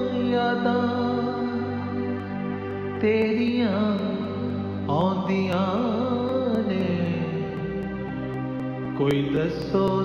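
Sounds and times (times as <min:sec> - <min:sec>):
person singing sad song: 0:00.0 - 0:07.9.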